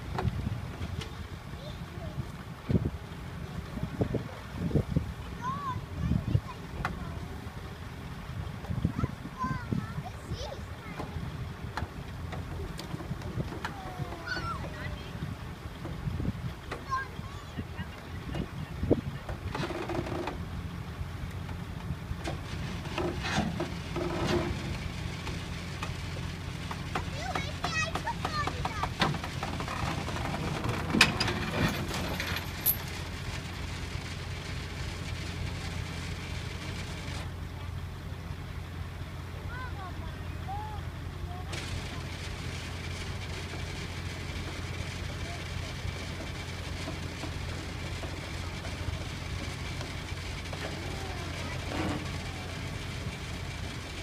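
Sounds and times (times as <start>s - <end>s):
truck engine rumble: 0.0s - 54.0s.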